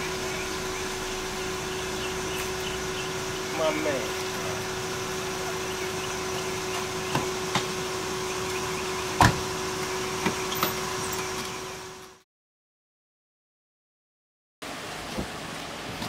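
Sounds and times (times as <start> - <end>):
steady hum: 0.0 - 12.2.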